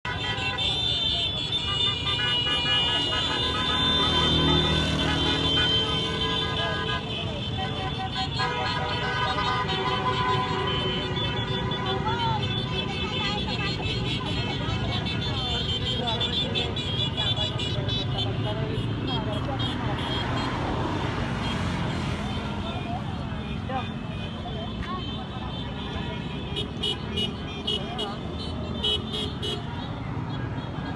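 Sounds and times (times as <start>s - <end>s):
car and motorcycle horns honking: 0.0s - 30.9s
rumble of many engines: 0.0s - 30.9s.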